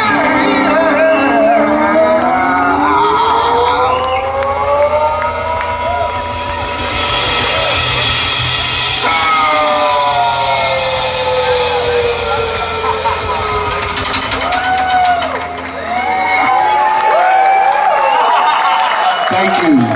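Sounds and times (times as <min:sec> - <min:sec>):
low rumble: 0:00.8 - 0:16.6
live blues band playing: 0:04.2 - 0:17.1.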